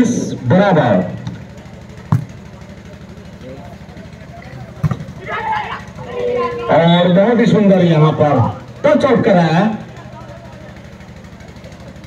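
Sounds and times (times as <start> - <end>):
faint crowd voices: 0.0 - 12.0
steady low hum: 0.0 - 12.0
volleyball slap: 2.1 - 2.4, 4.8 - 5.2.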